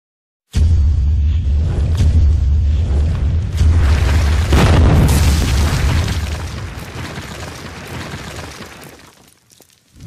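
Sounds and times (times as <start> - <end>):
explosion with deep booming rumble: 1.6 - 8.8
breaking debris: 3.6 - 10.0.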